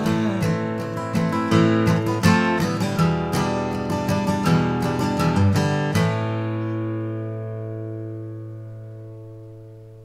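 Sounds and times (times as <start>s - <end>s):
acoustic guitar chord ringing: 0.0s - 10.0s.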